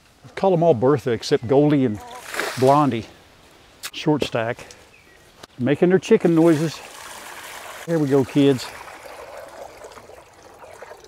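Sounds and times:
water poured into metal pan: 6.4 - 11.0.

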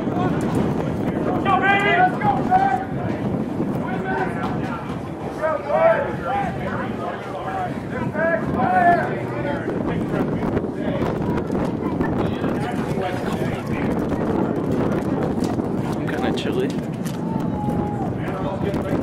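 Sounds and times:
wind buffeting microphone: 0.0 - 19.0
players shouting: 1.2 - 3.1, 3.8 - 9.6.

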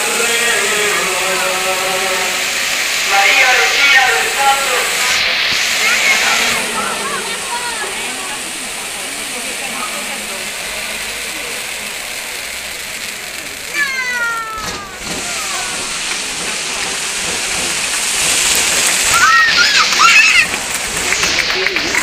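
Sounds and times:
fireworks hissing: 0.0 - 22.0
falling tone: 3.1 - 11.9.

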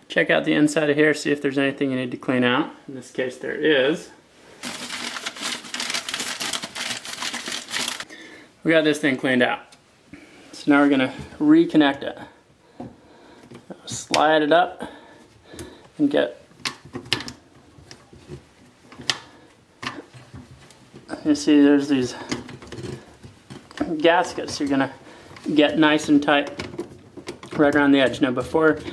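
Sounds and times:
crinkly scraping of plastic pipe: 4.6 - 8.0, 22.1 - 25.6
plastic drain parts clicking: 26.4 - 28.2.

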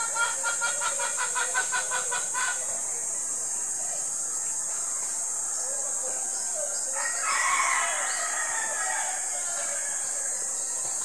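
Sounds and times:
steady high-pitched hiss: 0.0 - 11.0.

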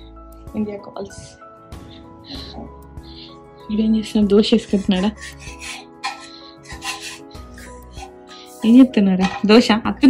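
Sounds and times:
background music: 0.0 - 10.0
spatula scraping a pan: 4.6 - 9.5.

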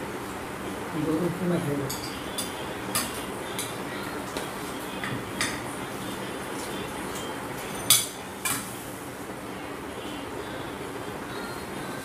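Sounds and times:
spoons clinking on plates: 1.8 - 3.8, 4.9 - 5.8, 7.1 - 8.7.

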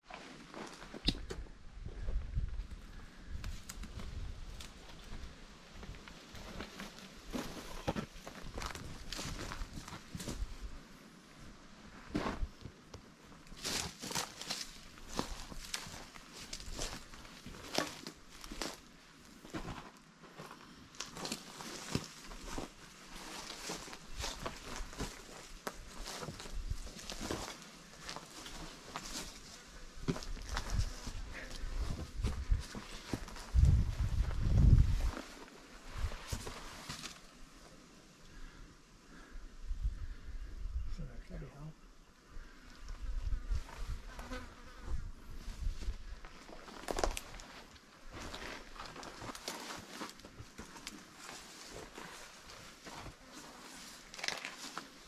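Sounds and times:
footsteps crunching on rocky ground: 0.1 - 1.1, 3.5 - 10.8, 12.0 - 12.8, 13.5 - 37.3, 43.5 - 55.0.

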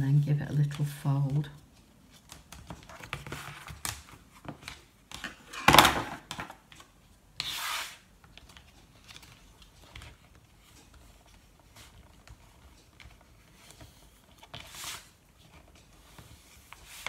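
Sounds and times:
cardstock rustling and folding: 0.3 - 17.0.

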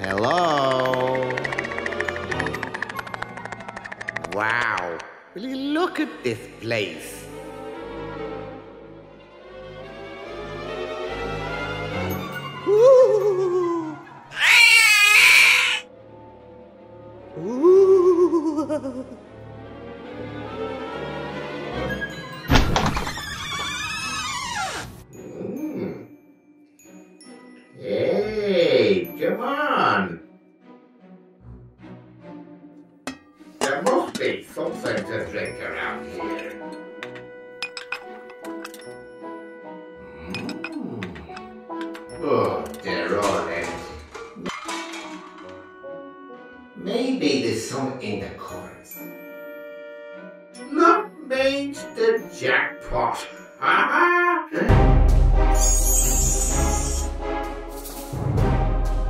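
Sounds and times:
background music: 0.0 - 59.0
cartoon cat screeching: 14.3 - 15.9, 55.8 - 57.1
glass clinking: 36.4 - 39.0, 40.3 - 41.5.

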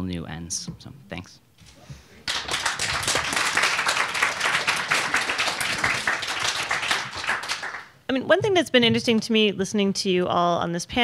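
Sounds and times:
audience applauding: 2.2 - 8.0.

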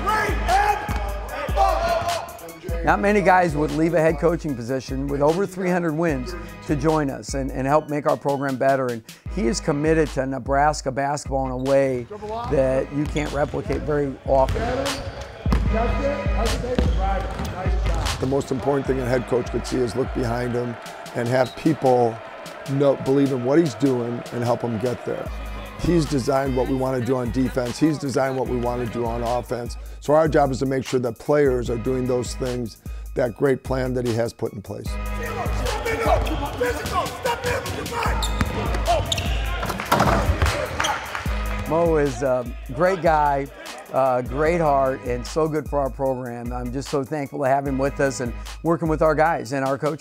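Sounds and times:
background music: 0.0 - 50.0
sneaker squeaks: 12.3 - 15.8, 16.6 - 18.0, 21.3 - 21.8, 35.9 - 41.2
basketballs bouncing on hardwood floor: 15.5 - 15.9, 16.6 - 18.1, 38.2 - 40.6.

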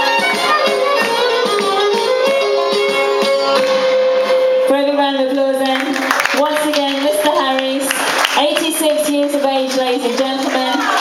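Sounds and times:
folk music with violin: 0.0 - 4.8.

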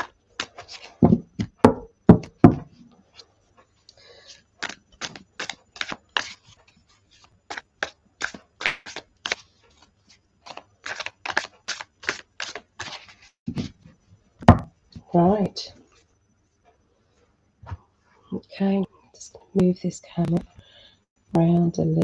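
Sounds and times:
cards being shuffled by hand: 0.0 - 1.6, 4.2 - 13.8.

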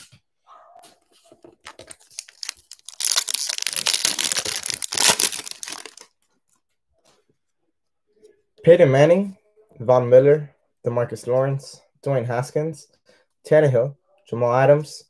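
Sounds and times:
wrapper crinkling: 1.2 - 6.2
wrapper tearing: 1.6 - 6.1.

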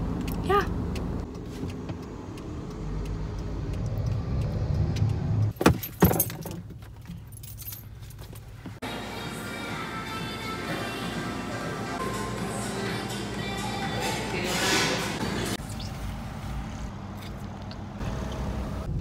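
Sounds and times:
car road and engine rumble: 0.0 - 9.0, 10.9 - 19.0
faint music: 8.8 - 15.6.

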